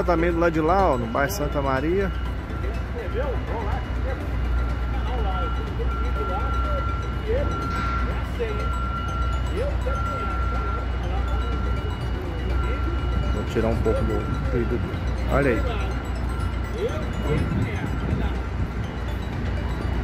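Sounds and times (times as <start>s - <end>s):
high electronic warning beep: 0.0s - 20.0s
low rumble of machinery: 0.0s - 20.0s.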